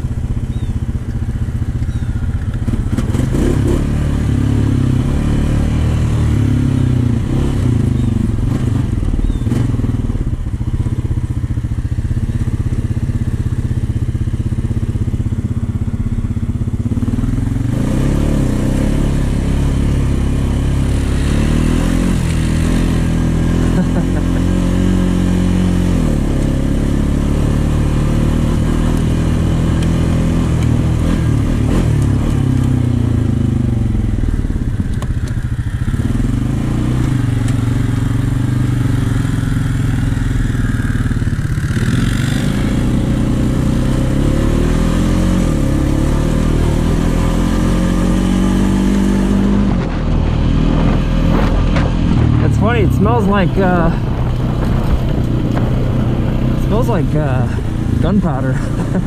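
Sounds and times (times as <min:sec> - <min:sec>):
atv engine revving: 0:00.0 - 0:59.0.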